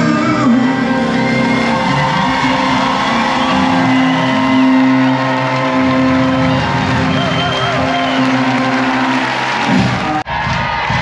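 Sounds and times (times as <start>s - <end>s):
live pop-rock band with piano: 0.0s - 10.2s
person singing: 0.0s - 10.2s.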